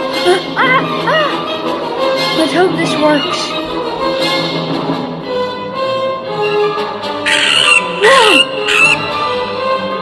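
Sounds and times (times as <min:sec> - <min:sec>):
orchestral music: 0:00.0 - 0:10.0
creature screeching: 0:07.3 - 0:09.1.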